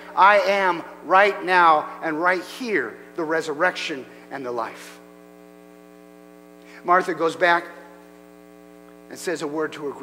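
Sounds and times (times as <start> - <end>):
man speaking: 0.0 - 5.0, 6.8 - 8.0, 9.1 - 10.0
electrical mains hum: 0.0 - 10.0.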